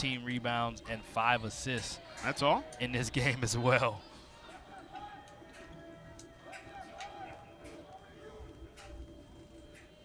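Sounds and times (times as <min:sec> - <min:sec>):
faint crowd murmur: 0:00.0 - 0:10.0.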